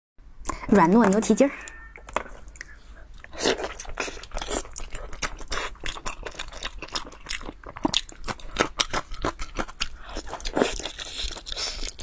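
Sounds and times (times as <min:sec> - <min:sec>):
chewing soft meat: 0:02.0 - 0:12.0.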